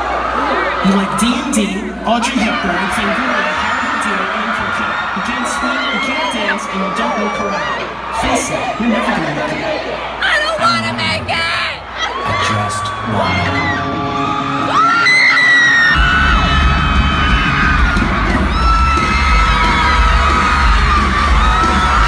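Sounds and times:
crowd screaming and cheering: 0:00.0 - 0:22.0
loud rock music with heavy bass: 0:15.9 - 0:22.0.

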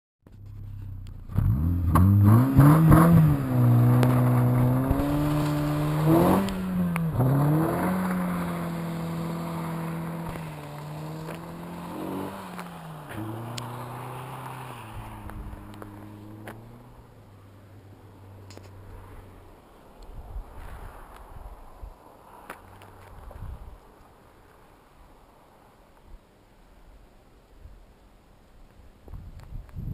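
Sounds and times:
car engine accelerating: 0:00.3 - 0:19.7.

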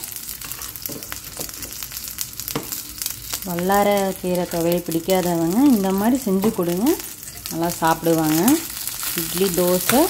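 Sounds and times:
vegetables sizzling in hot oil: 0:00.0 - 0:10.0.

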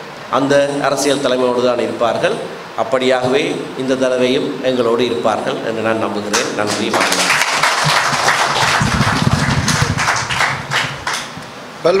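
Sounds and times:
man's voice: 0:00.4 - 0:07.3
audience applauding: 0:06.3 - 0:11.5.

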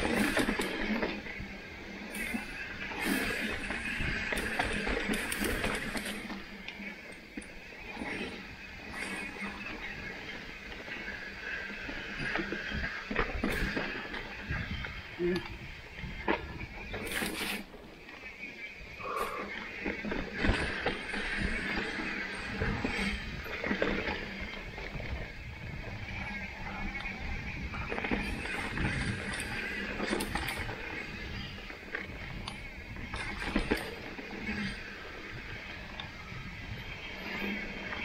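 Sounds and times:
bike tyre and drivetrain rattle: 0:00.0 - 0:38.0.

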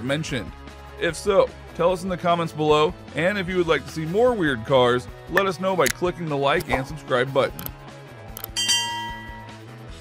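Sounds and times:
quiet background music: 0:00.0 - 0:10.0
click: 0:08.4 - 0:08.6
bright bell-like ding: 0:08.5 - 0:09.6.

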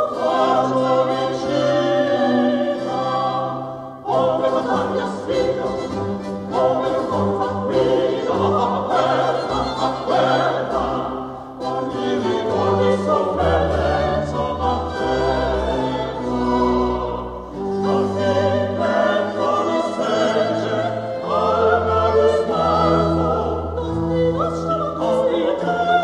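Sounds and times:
baroque ensemble bass notes: 0:00.0 - 0:26.0
small group of voices singing: 0:00.0 - 0:26.0.

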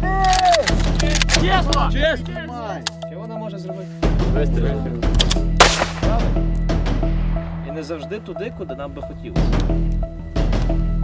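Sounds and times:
background music with low drone: 0:00.0 - 0:11.0
pistol shot: 0:05.6 - 0:06.3.

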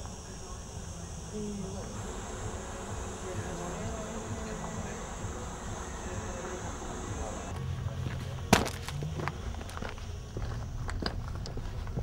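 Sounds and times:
faint distant voices: 0:00.0 - 0:12.0
insects chirring: 0:00.0 - 0:12.0.

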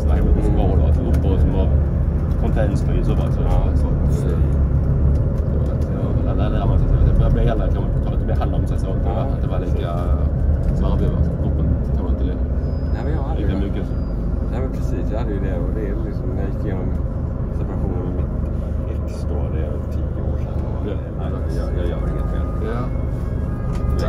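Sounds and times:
bus engine droning: 0:00.0 - 0:24.0
passengers talking: 0:00.0 - 0:24.0.

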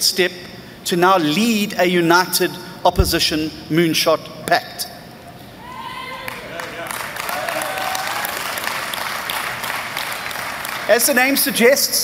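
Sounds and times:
crowd applauding: 0:06.2 - 0:10.9.

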